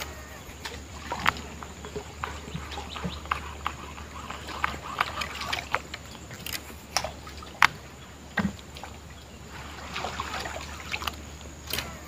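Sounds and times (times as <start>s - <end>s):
faint high hum: 0.0s - 12.0s
paddle splashing water: 0.0s - 12.0s
water dripping: 0.0s - 12.0s.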